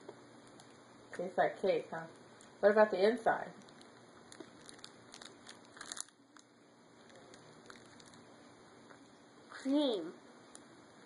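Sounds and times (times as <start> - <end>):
crinkling and crackling: 0.4 - 0.9, 3.5 - 9.0.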